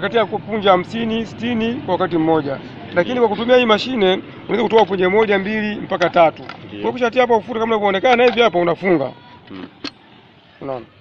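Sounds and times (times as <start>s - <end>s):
person speaking: 2.9s - 8.4s.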